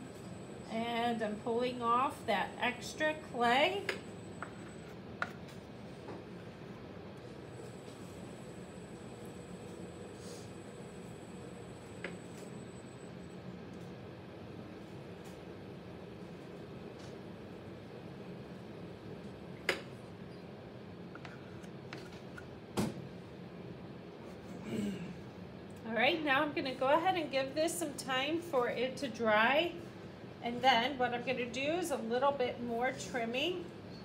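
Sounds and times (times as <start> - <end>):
potter's wheel humming: 0.0 - 15.2.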